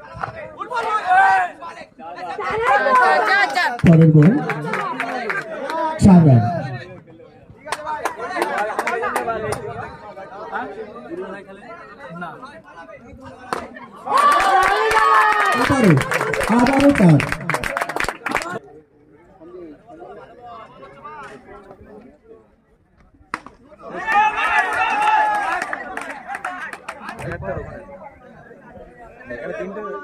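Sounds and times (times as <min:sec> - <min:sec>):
people talking: 0:00.0 - 0:14.1, 0:15.5 - 0:18.7
spectators shouting: 0:23.9 - 0:25.9.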